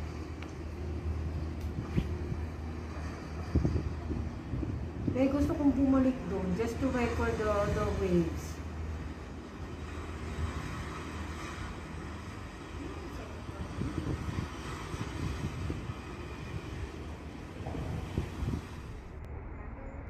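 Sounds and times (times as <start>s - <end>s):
low bumps: 0.0s - 19.7s
low background rumble: 0.0s - 20.0s.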